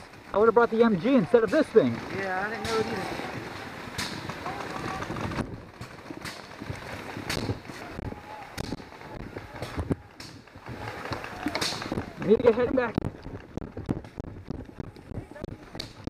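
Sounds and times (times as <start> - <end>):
wind rumbling on microphone: 2.0 - 16.0.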